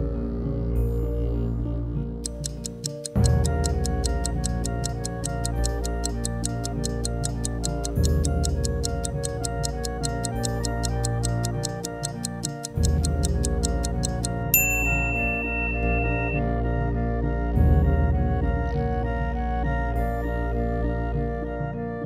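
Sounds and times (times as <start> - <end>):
countdown timer ticking: 2.2 - 16.6
background music with steady beat: 2.2 - 21.8.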